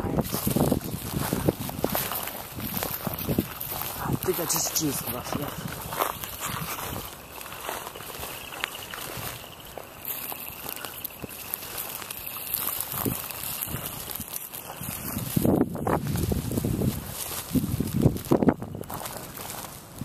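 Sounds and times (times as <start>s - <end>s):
rustling: 0.0s - 20.0s
steady hiss: 0.0s - 20.0s.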